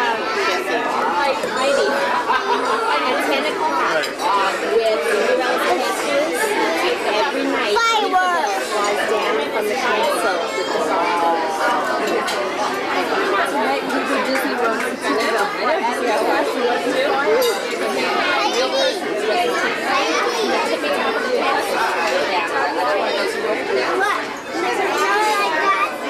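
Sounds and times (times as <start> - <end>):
diners chatter: 0.0 - 26.0.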